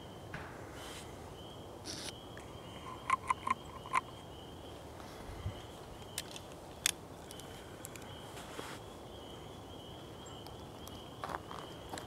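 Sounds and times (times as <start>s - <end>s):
woodpecker tapping on branch: 2.9s - 4.1s.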